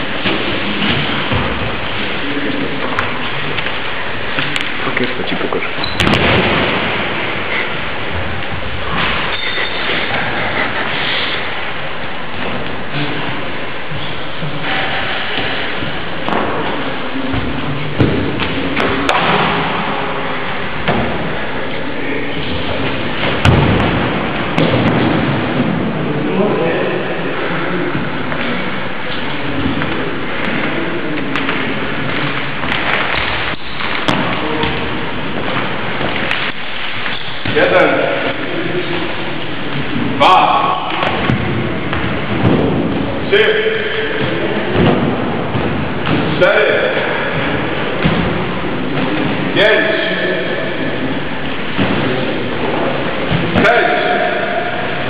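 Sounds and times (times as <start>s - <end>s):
voices: 37.4s - 55.0s.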